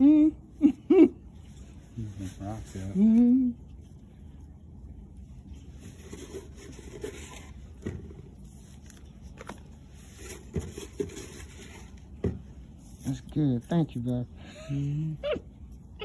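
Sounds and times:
soil rubbing and scraping: 1.5 - 3.2, 5.2 - 12.1.

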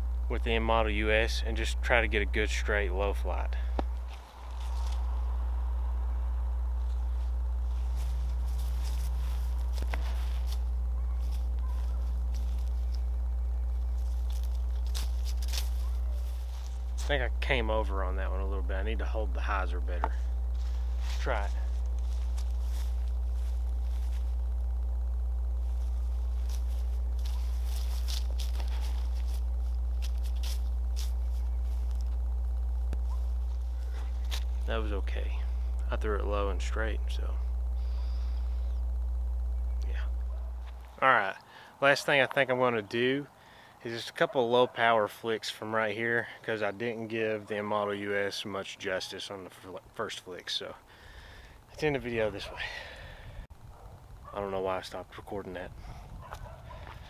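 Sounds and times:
faint footsteps on grass: 0.0 - 43.4, 50.6 - 57.0
wind rumble on microphone: 55.4 - 57.0.

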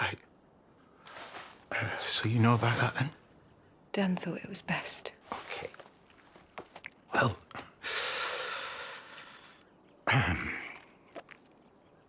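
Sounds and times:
man breathing out heavily: 7.8 - 9.6.

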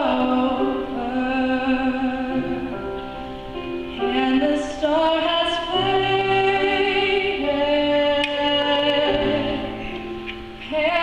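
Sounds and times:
young woman singing: 0.0 - 2.8, 3.9 - 11.0
grand piano accompaniment: 0.0 - 11.0.

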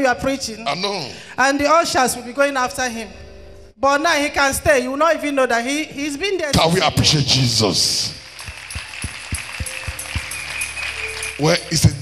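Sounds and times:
church praise music: 6.0 - 12.0
congregation clapping: 8.1 - 12.0
steady low drum beat: 8.4 - 10.6.

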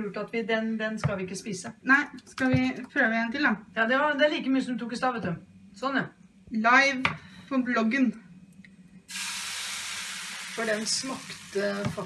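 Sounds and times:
batter sizzling in waffle iron: 9.1 - 12.0.

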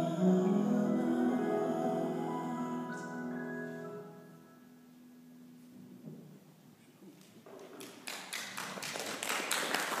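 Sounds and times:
hand clapping applause: 7.2 - 10.0.

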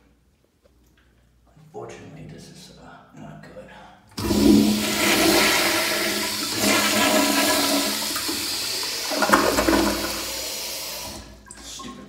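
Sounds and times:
toilet flushing rush of water: 4.2 - 12.0.

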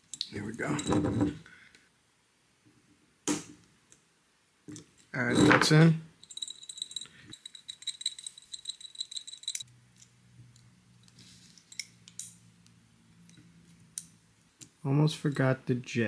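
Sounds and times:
small metal parts clicking and rattling: 6.2 - 12.4.

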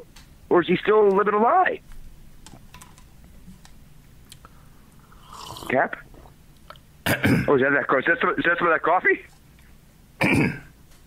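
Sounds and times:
man clearing his throat: 7.0 - 7.5, 10.2 - 10.8.

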